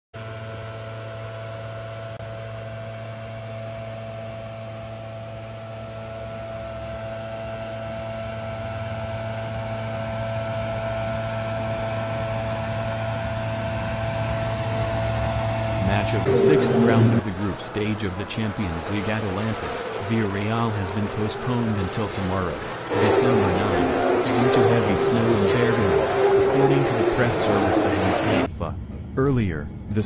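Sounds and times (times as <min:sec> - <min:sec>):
leaf blower engine running: 0:17.3 - 0:28.5.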